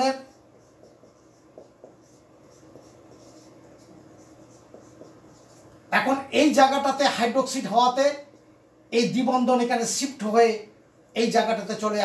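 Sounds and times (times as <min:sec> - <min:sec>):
marker scratching on whiteboard: 0:00.0 - 0:12.0.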